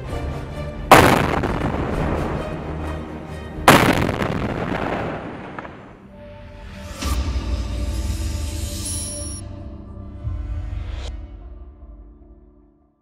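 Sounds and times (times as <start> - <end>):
explosions: 0.9 - 2.4, 3.7 - 6.0.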